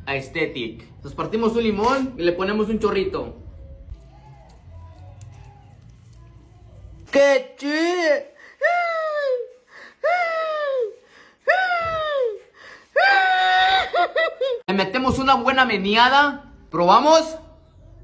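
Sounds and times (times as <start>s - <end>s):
person crying out: 13.0s - 14.0s.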